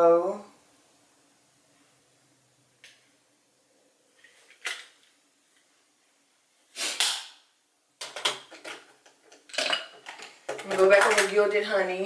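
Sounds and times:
makeup items clattering on hard surface: 0:08.0 - 0:11.7.

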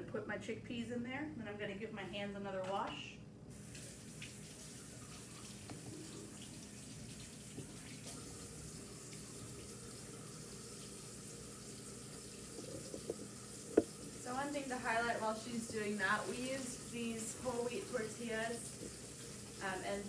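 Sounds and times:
hands washing at sink: 0:03.5 - 0:20.0
tap running: 0:05.5 - 0:08.3, 0:12.4 - 0:19.6.

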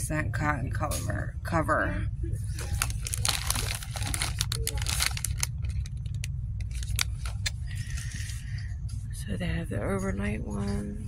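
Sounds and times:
steady low rumble: 0:00.0 - 0:11.0
plastic wrapper crinkling: 0:02.6 - 0:07.6.

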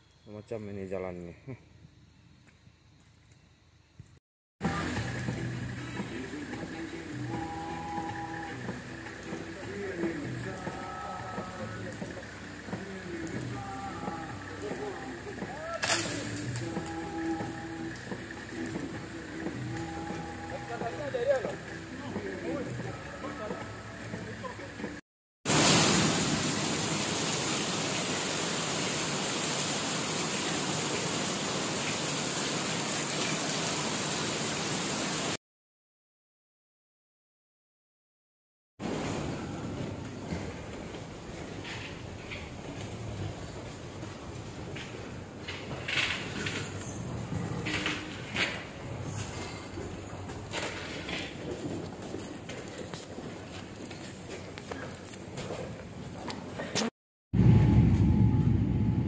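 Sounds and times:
people calling out: 0:06.2 - 0:18.6, 0:19.4 - 0:24.8.

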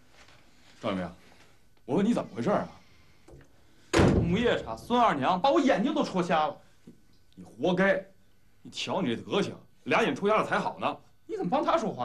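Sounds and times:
sharp thud: 0:03.9 - 0:04.6.

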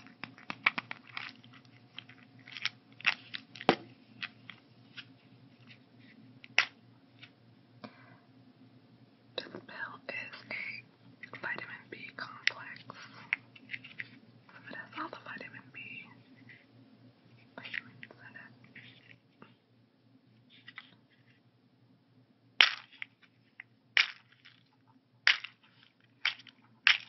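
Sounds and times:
soft whispering: 0:09.4 - 0:13.3, 0:14.5 - 0:16.7, 0:17.4 - 0:19.6.

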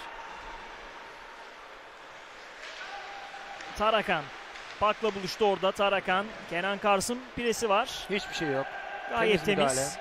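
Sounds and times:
hockey play on ice: 0:00.0 - 0:08.7.

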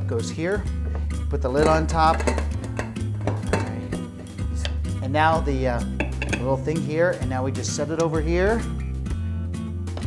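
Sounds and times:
background music: 0:00.0 - 0:10.0
light metallic lid clinks: 0:06.0 - 0:06.5.

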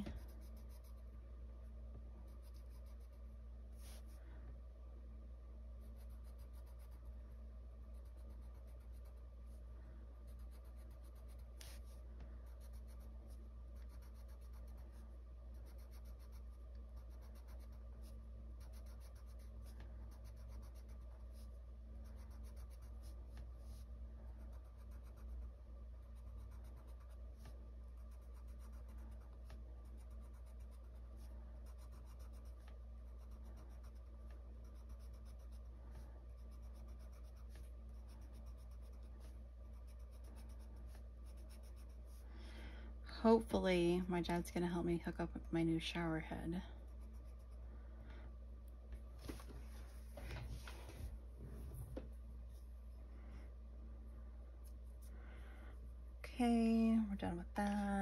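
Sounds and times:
colored pencil scratching on paper: 0:00.0 - 0:01.1, 0:02.2 - 0:04.2, 0:05.8 - 0:07.2, 0:07.8 - 0:09.6, 0:10.2 - 0:42.2, 0:46.1 - 0:47.6
low room hum: 0:00.0 - 0:58.0.

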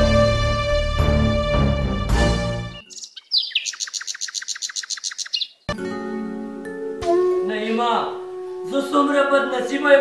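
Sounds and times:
background music: 0:00.0 - 0:02.9, 0:05.7 - 0:10.0
small bird trilling: 0:02.8 - 0:05.7.

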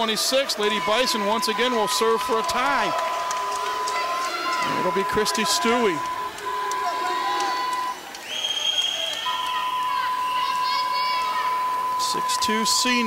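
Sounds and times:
crowd chatter in gym: 0:00.0 - 0:13.0
referee's whistle blast: 0:00.6 - 0:13.0
thin high tone: 0:00.6 - 0:13.0.

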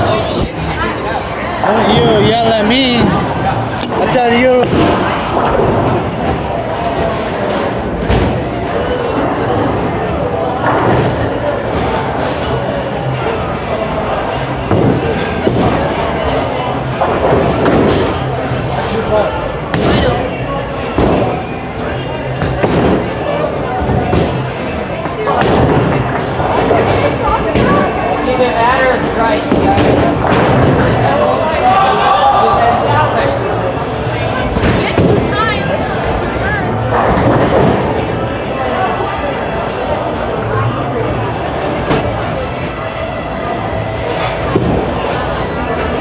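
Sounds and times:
people talking: 0:00.0 - 0:05.4, 0:18.1 - 0:46.0.

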